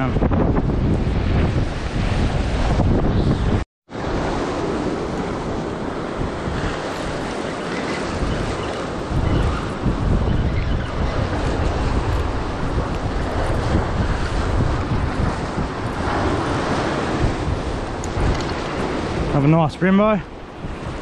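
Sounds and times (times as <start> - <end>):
ocean surf breaking on rocks: 0.0 - 21.0
wind buffeting microphone: 0.0 - 21.0.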